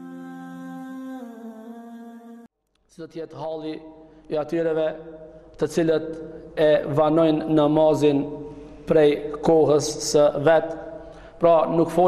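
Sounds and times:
hummed voices holding a chord: 0:00.0 - 0:02.5.

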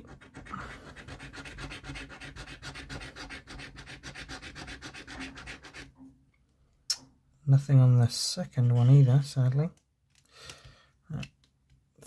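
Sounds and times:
coin scratching a scratchcard: 0:00.0 - 0:05.9.

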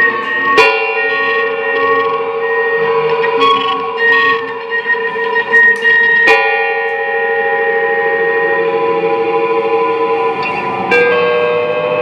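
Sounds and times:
electric guitars holding long tones: 0:00.0 - 0:12.0
sharp plucked guitar attack: 0:00.0 - 0:12.0.

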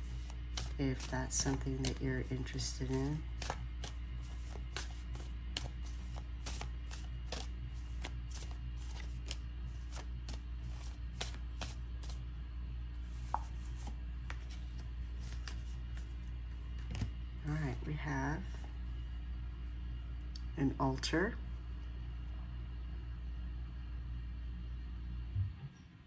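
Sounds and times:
cards being shuffled: 0:00.0 - 0:12.2, 0:13.0 - 0:17.1.

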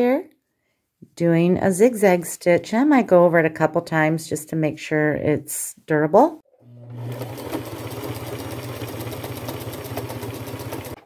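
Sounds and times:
sewing machine motor hum: 0:06.6 - 0:11.0
sewing machine needle clatter: 0:07.0 - 0:11.0.

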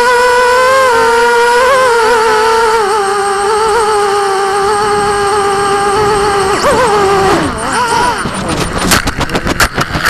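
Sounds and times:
drone propellers whining: 0:00.0 - 0:10.0
drone hitting the ground: 0:04.4 - 0:10.0.

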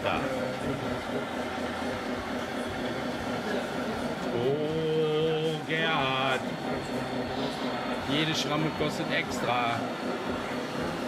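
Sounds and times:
people talking indistinctly: 0:02.5 - 0:11.0.

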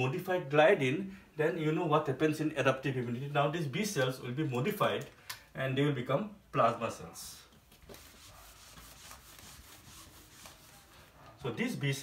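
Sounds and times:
eraser rubbing on whiteboard: 0:07.8 - 0:11.3.

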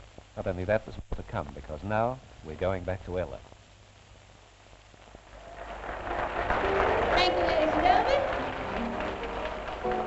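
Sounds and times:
audience applause: 0:05.2 - 0:10.0.

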